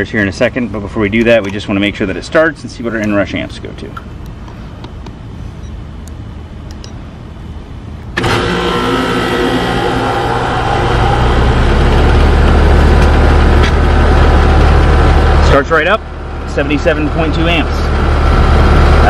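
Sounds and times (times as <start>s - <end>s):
air conditioner compressor humming: 0.0s - 19.0s.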